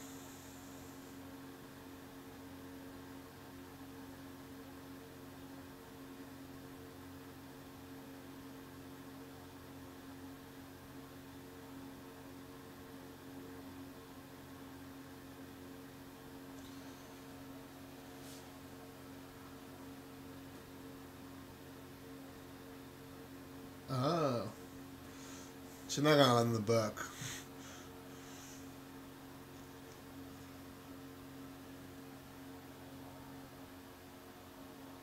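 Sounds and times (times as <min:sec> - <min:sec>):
low electrical hum: 0:00.0 - 0:35.0.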